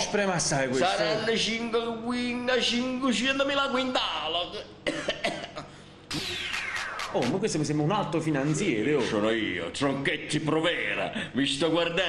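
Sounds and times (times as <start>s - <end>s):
person coughing: 4.8s - 5.7s.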